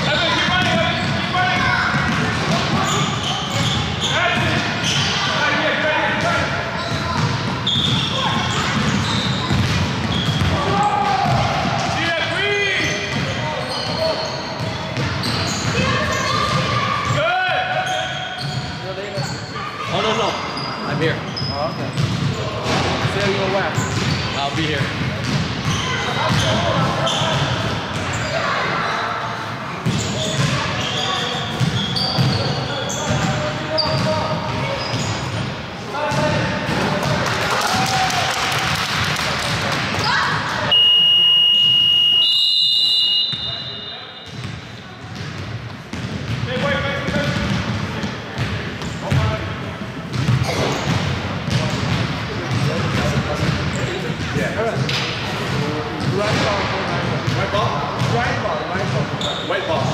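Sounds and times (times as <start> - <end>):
sneakers squeaking on hardwood: 0.0 - 5.4, 6.2 - 12.0, 12.6 - 29.2, 29.8 - 37.2, 43.2 - 56.5, 58.0 - 59.9
basketball dribbling: 0.4 - 4.6, 6.8 - 11.6, 44.3 - 49.2, 50.1 - 54.2.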